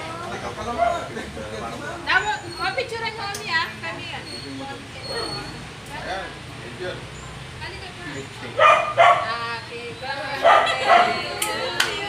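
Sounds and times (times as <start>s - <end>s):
dog barking: 8.6s - 9.4s, 10.4s - 11.2s
people chatting: 9.0s - 12.0s.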